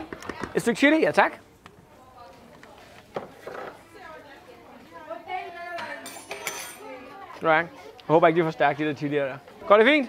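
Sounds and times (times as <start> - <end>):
background chatter of voices: 0.0 - 10.0
cutlery clinking: 5.8 - 7.0.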